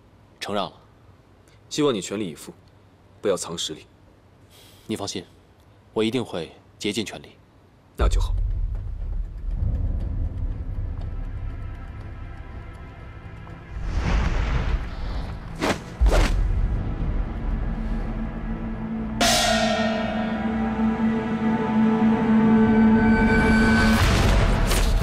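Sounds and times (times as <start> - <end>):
low rumbling drone: 8.0 - 24.7
whoosh: 13.7 - 16.8
sharp hits: 19.0 - 21.4
crash ringing into held chord: 19.1 - 22.1.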